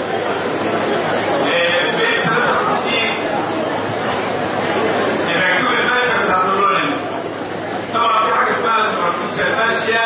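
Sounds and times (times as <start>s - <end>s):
crowd chatter: 0.0s - 10.0s
man talking into a microphone: 1.4s - 3.2s, 5.3s - 7.0s, 8.0s - 10.0s.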